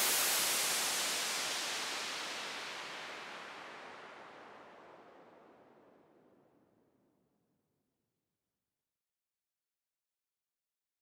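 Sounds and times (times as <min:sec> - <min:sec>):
electronic white noise hiss: 0:00.0 - 0:04.9.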